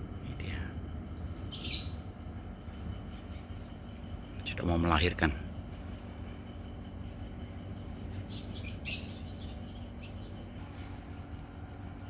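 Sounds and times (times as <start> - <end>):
birds chirping: 0.0 - 12.0
steady low rumble: 0.0 - 12.0.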